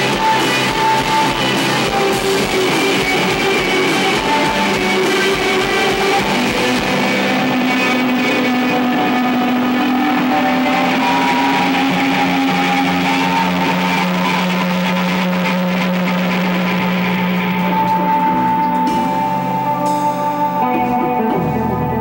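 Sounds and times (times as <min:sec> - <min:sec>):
electric guitars sustained notes: 0:00.0 - 0:22.0
steady low bass note: 0:00.9 - 0:22.0.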